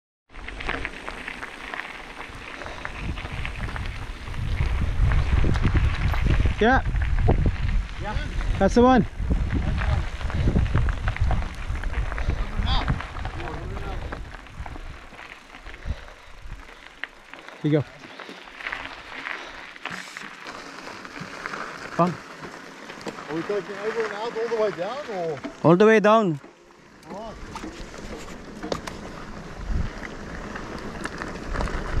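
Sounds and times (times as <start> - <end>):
bike tyres crackling on gravel: 0.3 - 32.0
wind rumble on microphone: 2.2 - 16.8, 27.3 - 32.0.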